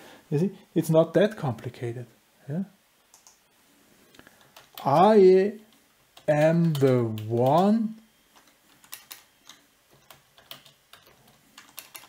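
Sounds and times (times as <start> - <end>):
man talking: 0.3 - 2.8, 4.8 - 8.0
keyboard keys clicking: 3.1 - 3.4, 4.4 - 7.7, 8.3 - 12.0.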